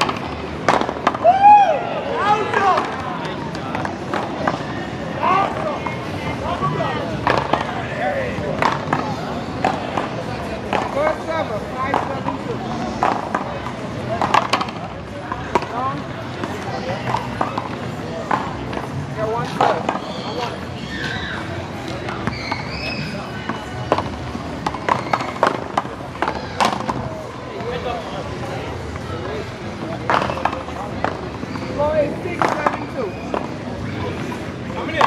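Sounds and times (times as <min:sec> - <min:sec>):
voices: 0:00.0 - 0:35.0.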